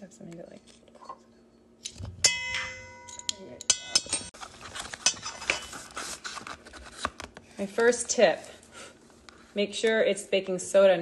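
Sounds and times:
metal spoon striking ringing bowl: 2.2s - 4.3s.

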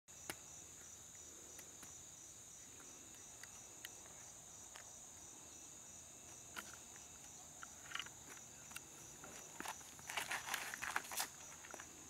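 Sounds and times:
high-pitched insect chorus: 0.1s - 12.0s.

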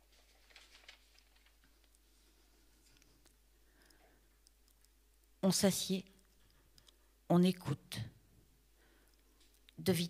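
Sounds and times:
faint rustles and clicks: 0.0s - 5.4s.

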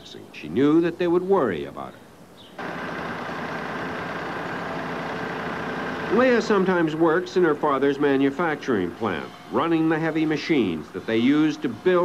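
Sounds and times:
machine tool cutting metal: 2.6s - 12.0s.

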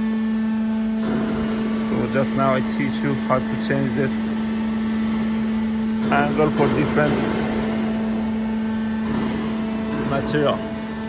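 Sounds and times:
roll forming machine humming: 0.0s - 11.0s.

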